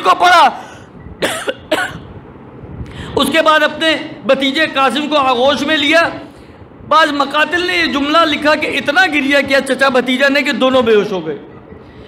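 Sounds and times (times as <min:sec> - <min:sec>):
man coughing: 0:01.2 - 0:02.1.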